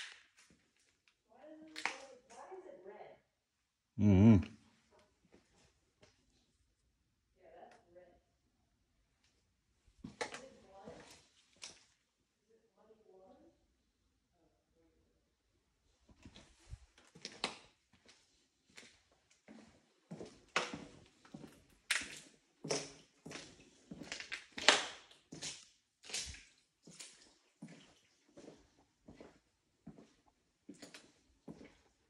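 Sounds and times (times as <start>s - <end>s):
footsteps on debris-covered floor: 0.0s - 1.1s, 10.0s - 12.0s, 16.1s - 32.0s.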